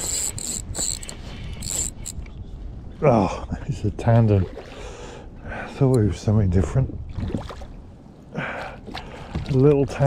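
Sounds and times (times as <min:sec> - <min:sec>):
fishing reel whirring: 0:00.0 - 0:02.2.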